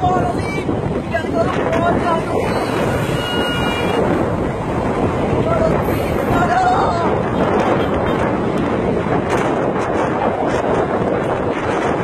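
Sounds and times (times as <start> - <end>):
car road noise: 0.0 - 12.0
wind rush on microphone: 0.0 - 12.0.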